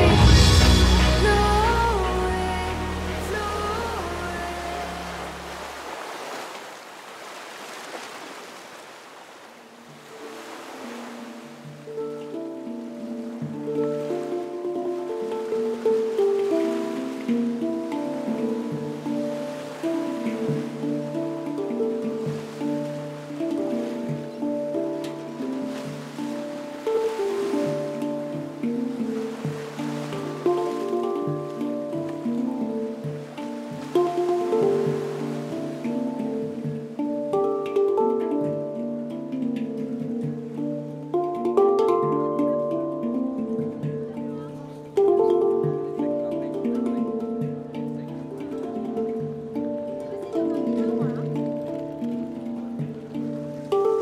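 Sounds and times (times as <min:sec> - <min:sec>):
handpan melody: 0:00.0 - 0:06.0, 0:09.6 - 0:54.0
ocean surf hissing: 0:00.0 - 0:42.1.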